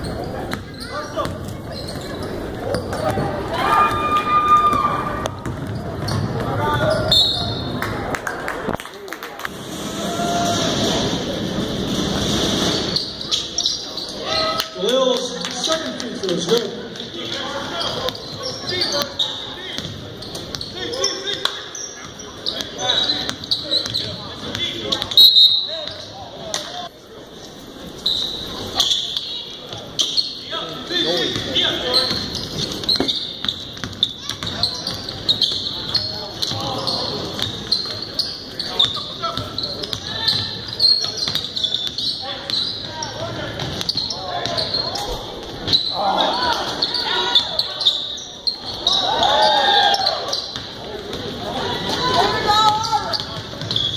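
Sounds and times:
voices echoing in a hall: 0:00.0 - 0:53.9
basketball bouncing: 0:05.2 - 0:07.0, 0:19.8 - 0:20.6.

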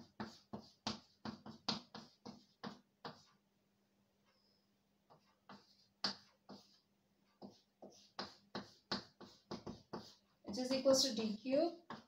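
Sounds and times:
chalk tapping on blackboard: 0:00.0 - 0:03.4, 0:05.0 - 0:12.0.

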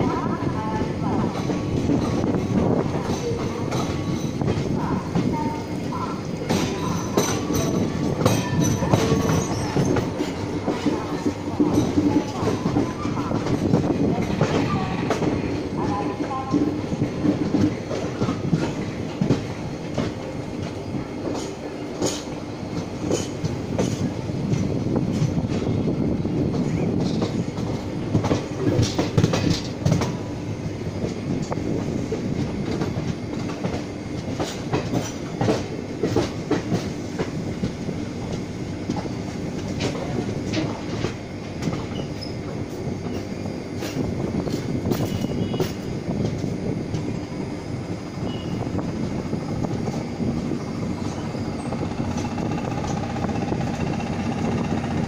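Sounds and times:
train wheels rumbling on track: 0:00.0 - 0:55.0.

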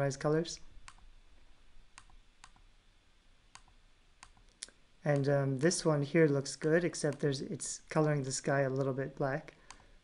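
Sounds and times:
computer mouse clicks: 0:00.8 - 0:01.1, 0:02.0 - 0:02.6, 0:03.5 - 0:05.8.

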